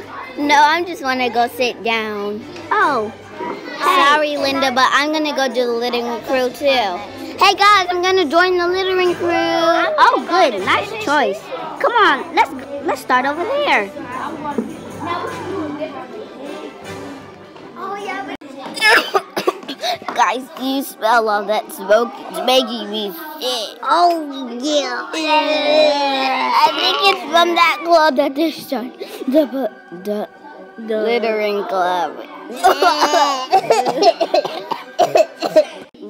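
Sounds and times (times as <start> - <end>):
children talking: 0.0 - 36.0
soft background music: 0.0 - 36.0
child laughing: 32.5 - 35.8.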